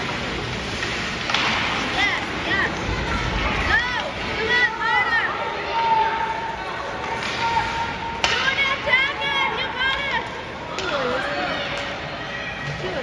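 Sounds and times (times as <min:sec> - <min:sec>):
hockey sticks clacking on ice: 0:00.0 - 0:04.8, 0:06.1 - 0:12.0.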